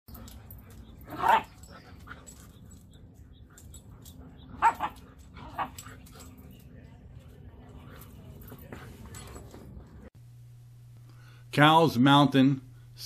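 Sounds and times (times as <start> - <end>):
dog barking: 4.6 - 5.8.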